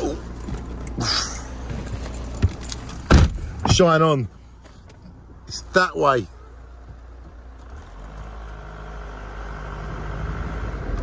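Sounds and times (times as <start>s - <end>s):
keys jingling: 0.3s - 3.1s.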